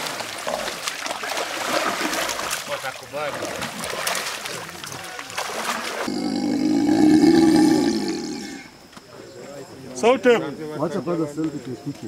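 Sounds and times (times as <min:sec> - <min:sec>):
crocodile growling: 0:06.0 - 0:08.8.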